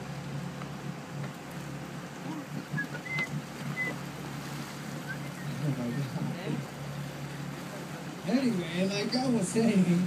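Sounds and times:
boat engine humming: 0:00.0 - 0:10.0
water washing: 0:00.0 - 0:10.0
wind: 0:00.0 - 0:10.0.

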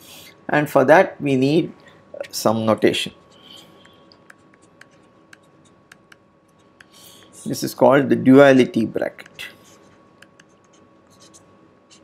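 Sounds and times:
stylus scratching on tablet: 0:03.0 - 0:07.8, 0:09.2 - 0:12.0.

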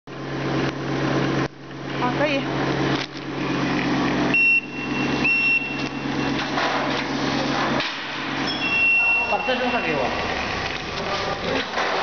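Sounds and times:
conveyor machine hum: 0:00.1 - 0:12.0.

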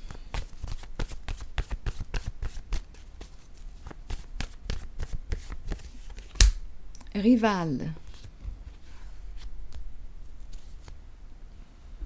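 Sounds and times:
cards being shuffled: 0:00.0 - 0:06.6, 0:08.0 - 0:11.0.

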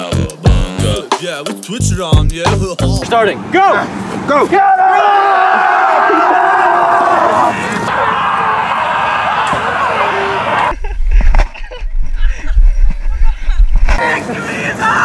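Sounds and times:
group of people yelling: 0:03.6 - 0:10.7
camera microphone buffeting: 0:10.7 - 0:14.0.

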